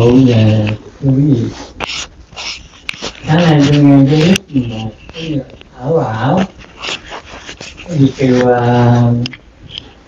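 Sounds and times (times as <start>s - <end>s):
elderly man's drawn-out syllable: 0.0s - 9.4s.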